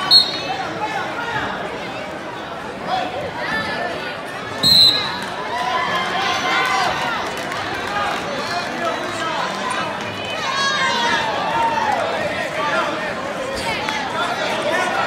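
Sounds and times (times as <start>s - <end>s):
referee's whistle blast: 0.0s - 0.6s, 4.6s - 5.2s.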